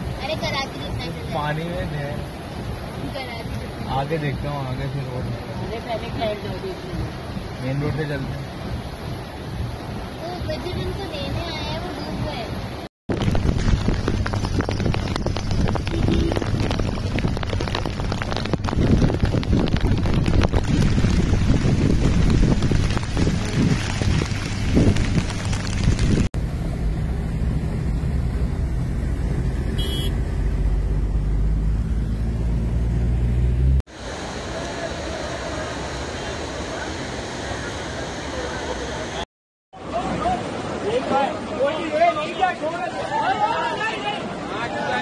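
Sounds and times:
cars driving through water: 0.0s - 45.0s
heavy rain pouring: 0.0s - 45.0s
rushing water: 0.0s - 45.0s
wind buffeting microphone: 8.6s - 26.3s.

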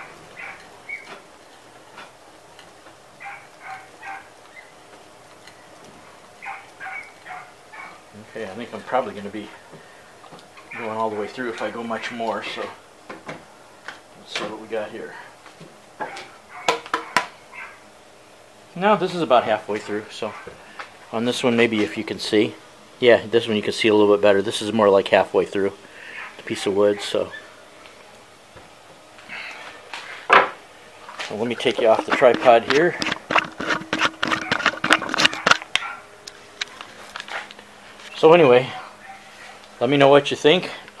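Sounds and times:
faint steady hum: 0.0s - 41.0s.

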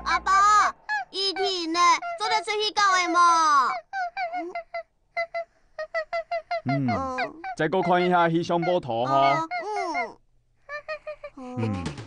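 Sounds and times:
low voice humming: 11.4s - 12.0s.

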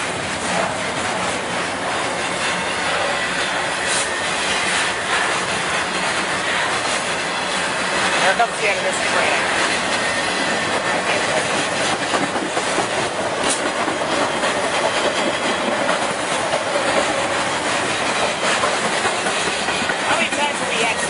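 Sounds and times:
freight train rolling past: 0.0s - 21.0s
wheels clacking over rail joints: 0.0s - 21.0s.

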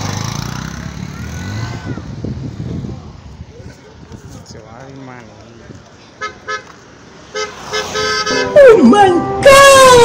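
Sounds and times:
vehicle horn beeps: 7.4s - 8.6s.

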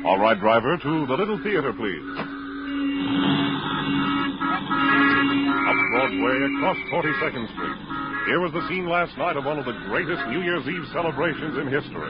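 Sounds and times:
city street traffic: 0.0s - 12.0s
car horns tooting: 0.2s - 12.0s.

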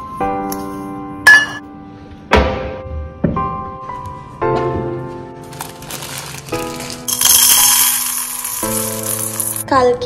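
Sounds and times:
background music: 0.0s - 10.0s
metal bowl clinking: 7.1s - 9.6s.

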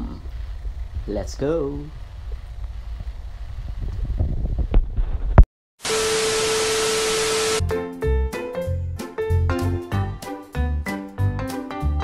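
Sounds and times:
low rumbling with ticks: 0.0s - 4.8s
steady held tone over hiss: 5.8s - 7.6s
upbeat music with piano: 7.6s - 12.0s.

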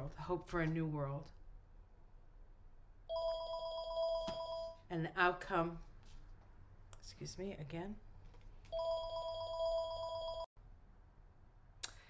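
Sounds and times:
electronic telephone ring: 3.1s - 4.8s, 8.7s - 10.5s.

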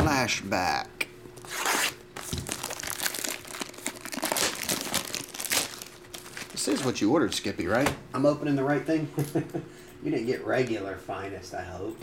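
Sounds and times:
plastic wrap ripping: 1.4s - 7.1s
plastic wrap crinkling: 1.5s - 7.1s.

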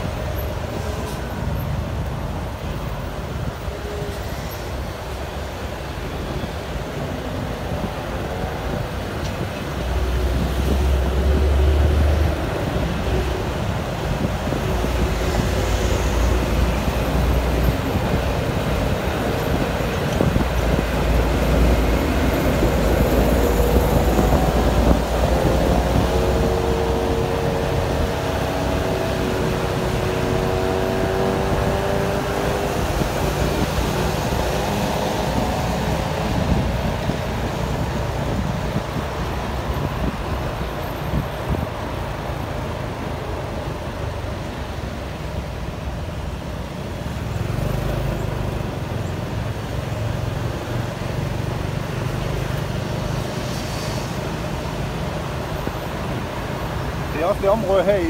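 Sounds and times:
vehicle engine and road noise: 0.0s - 58.0s.

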